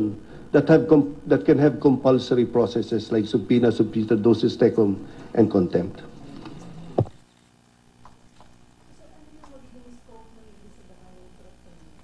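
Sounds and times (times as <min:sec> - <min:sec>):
background hiss: 0:00.0 - 0:11.8.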